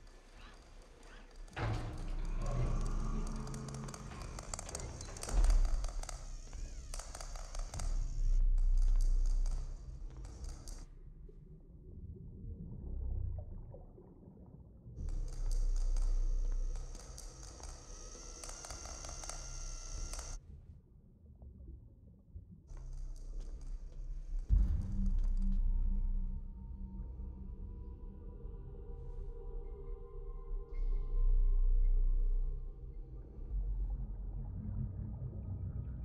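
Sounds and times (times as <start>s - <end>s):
low hum: 0.0s - 20.4s, 22.7s - 36.0s.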